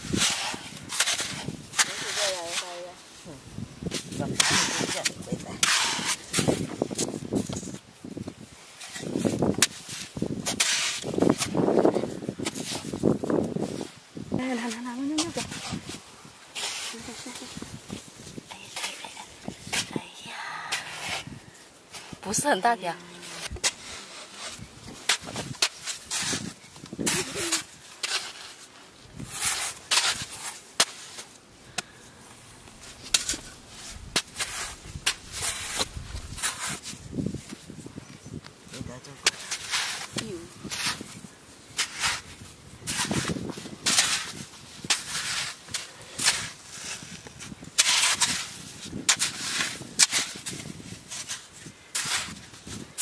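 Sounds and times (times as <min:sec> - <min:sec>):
mud scraping and crunching: 0:00.0 - 0:53.0.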